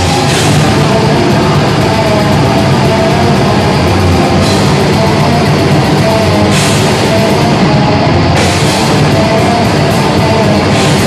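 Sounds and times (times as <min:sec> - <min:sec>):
metal band playing live: 0:00.0 - 0:11.0.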